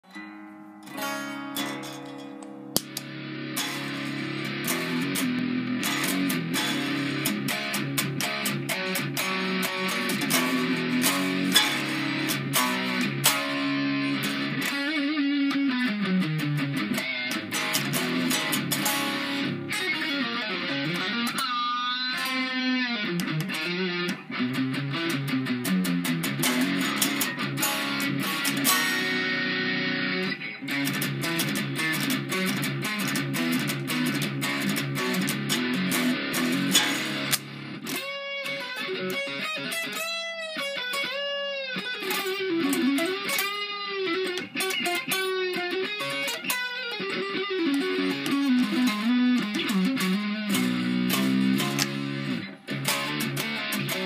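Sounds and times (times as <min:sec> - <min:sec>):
distorted electric guitar: 0:00.0 - 0:54.0.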